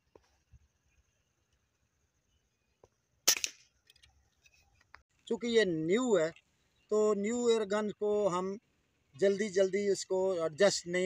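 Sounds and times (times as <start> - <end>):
air rifle shot: 3.2 - 3.6.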